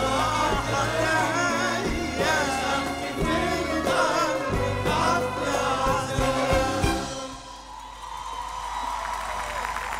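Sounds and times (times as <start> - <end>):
live band playing: 0.0 - 8.0
crowd cheering: 7.2 - 9.9.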